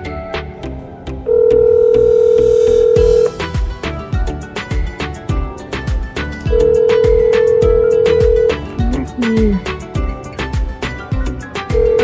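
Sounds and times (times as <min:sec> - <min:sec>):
background music with steady beat: 0:00.0 - 0:12.0
phone ringback tone: 0:01.3 - 0:03.4, 0:06.4 - 0:08.8, 0:11.6 - 0:12.0.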